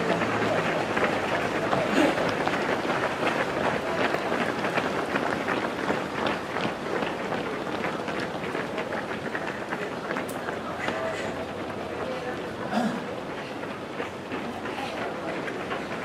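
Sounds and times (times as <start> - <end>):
runners' footsteps on asphalt: 0.0 - 16.0.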